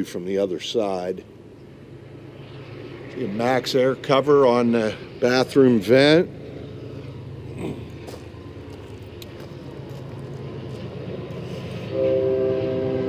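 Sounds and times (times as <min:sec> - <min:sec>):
steady low hum: 0:00.0 - 0:13.0
loud horn chord: 0:11.9 - 0:13.0.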